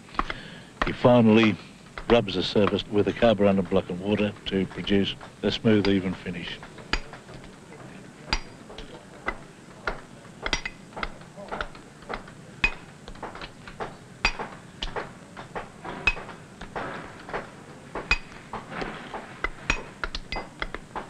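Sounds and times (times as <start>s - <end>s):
hammer striking chisel on stone: 8.3s - 8.6s, 9.9s - 15.0s, 16.0s - 16.3s, 18.0s - 18.4s.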